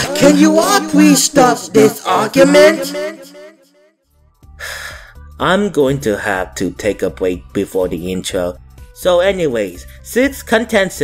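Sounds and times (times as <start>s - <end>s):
person speaking: 0.0s - 3.5s
low background music: 4.1s - 11.0s
breathy gasp: 4.6s - 5.2s.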